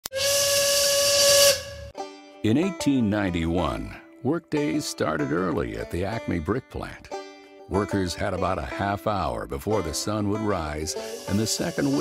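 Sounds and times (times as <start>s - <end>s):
factory steam whistle blast: 0.1s - 2.0s, 10.9s - 12.0s
hissing steam: 10.9s - 12.0s.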